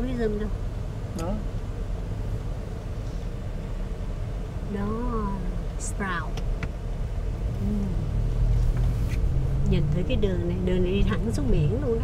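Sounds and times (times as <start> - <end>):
car cabin rumble: 0.0 - 12.0
passenger humming: 0.0 - 12.0.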